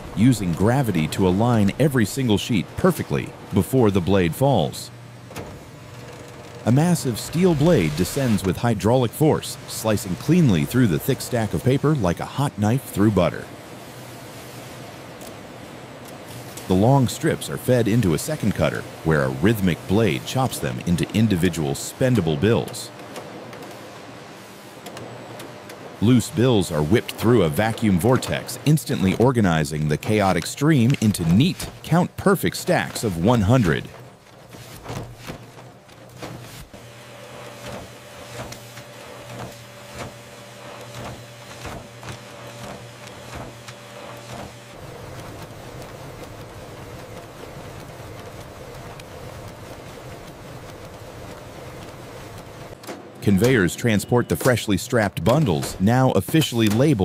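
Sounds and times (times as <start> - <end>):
machine whir: 0.0 - 57.0
machinery humming: 0.0 - 57.0
rhythmic mechanical clicking: 24.8 - 57.0.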